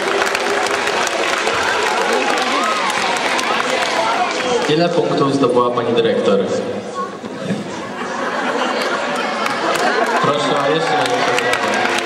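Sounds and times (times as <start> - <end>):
audience applauding: 0.0 - 5.2, 8.6 - 12.0.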